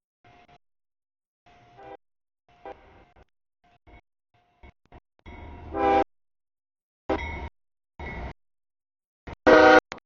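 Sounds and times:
diesel locomotive horn: 0:01.7 - 0:02.0, 0:02.6 - 0:03.1, 0:05.7 - 0:06.1, 0:09.3 - 0:10.0.

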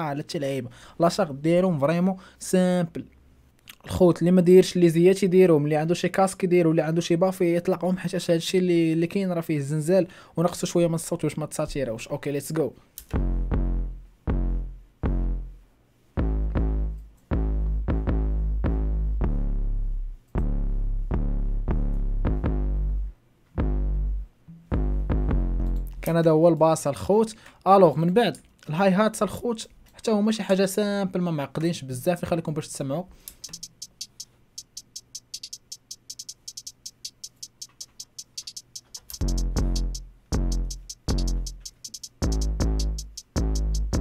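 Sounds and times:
deep synthesized bass line: 0:13.1 - 0:15.6, 0:16.2 - 0:26.1, 0:39.1 - 0:44.0
programmed hi-hat ticks: 0:33.2 - 0:44.0.

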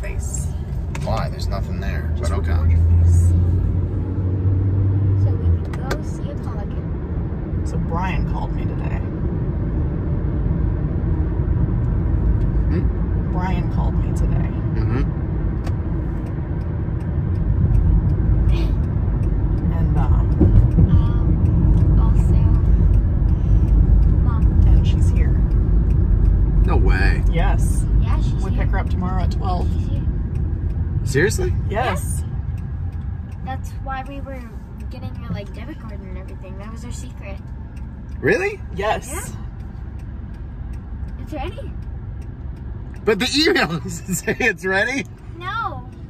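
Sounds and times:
car road and engine rumble: 0:00.0 - 0:46.0.

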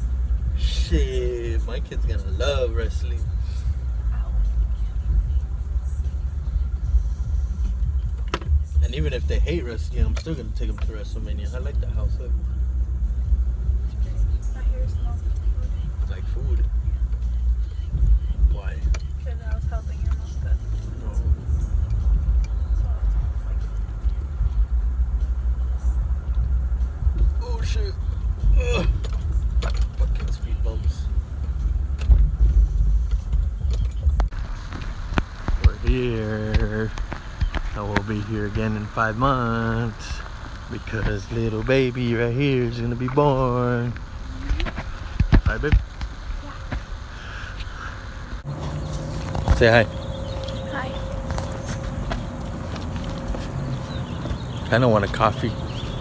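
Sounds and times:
car interior road rumble: 0:00.0 - 0:56.0.

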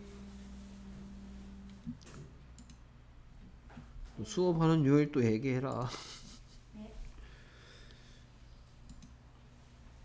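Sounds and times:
low steady hum: 0:00.0 - 0:10.0
computer mouse clicks: 0:01.7 - 0:02.8, 0:08.8 - 0:09.2.

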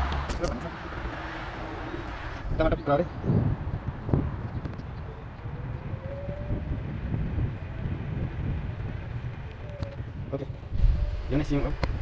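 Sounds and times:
bicycle road noise: 0:00.0 - 0:12.0
wind rumble on microphone: 0:00.0 - 0:12.0.

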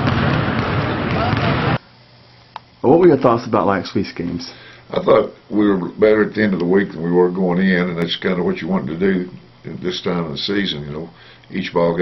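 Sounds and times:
balls bouncing on gym floor: 0:00.0 - 0:01.8.

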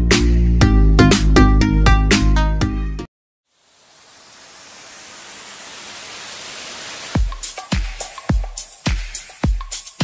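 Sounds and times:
white-noise riser hiss: 0:03.5 - 0:08.3.

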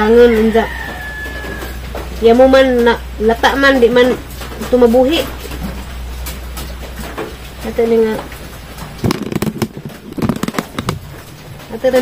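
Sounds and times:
fruit pits cracking on stone: 0:09.0 - 0:11.1
plastic wrapper crinkling: 0:09.0 - 0:11.4.

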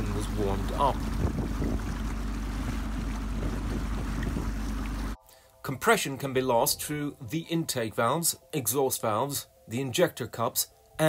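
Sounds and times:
boat diesel engine running: 0:00.0 - 0:05.2
water churning: 0:00.0 - 0:05.2
wind on microphone: 0:00.0 - 0:05.2.

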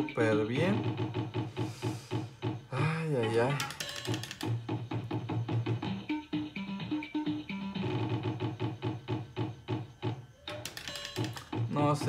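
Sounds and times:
slot machine game tune: 0:00.0 - 0:01.3, 0:03.0 - 0:09.7, 0:10.4 - 0:12.0.

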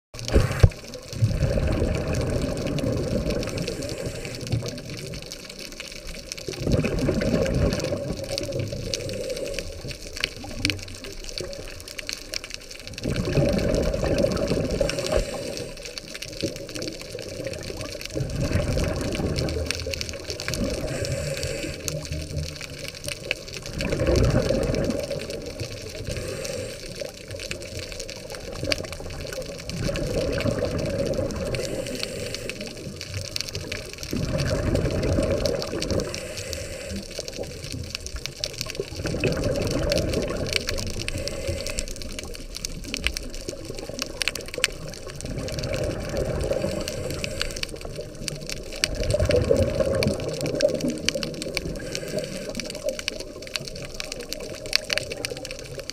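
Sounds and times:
regulator exhaled bubbles rushing: 0:00.2 - 0:05.2, 0:06.4 - 0:10.7, 0:12.9 - 0:15.8, 0:16.4 - 0:26.7, 0:28.2 - 0:38.0, 0:38.7 - 0:55.7
underwater water noise: 0:00.2 - 0:55.9.

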